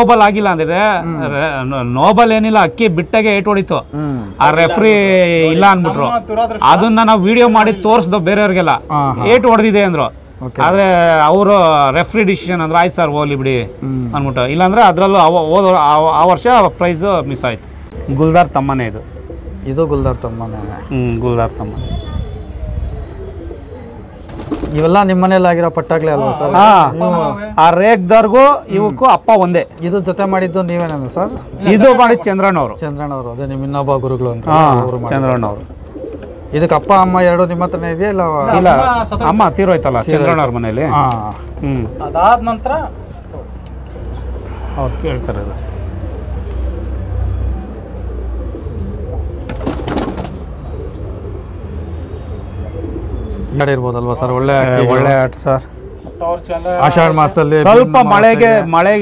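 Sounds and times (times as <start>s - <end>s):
pigeon cooing: 2.3s - 10.4s, 11.6s - 15.4s, 16.7s - 27.6s, 33.5s - 59.0s.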